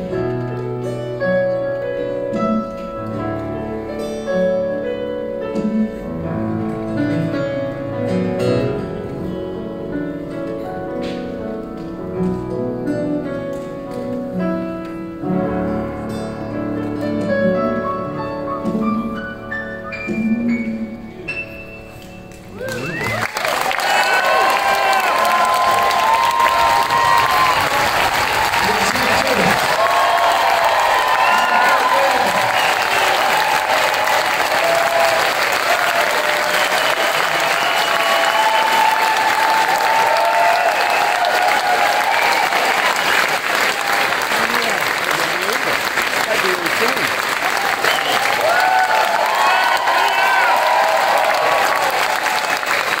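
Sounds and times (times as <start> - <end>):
audience clapping: 22.4 - 53.0
crowd cheering and shouting: 22.5 - 44.8, 46.4 - 53.0.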